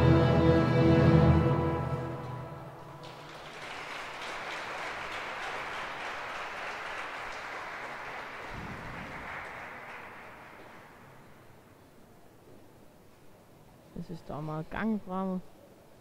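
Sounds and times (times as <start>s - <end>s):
audience applauding: 2.8s - 11.5s.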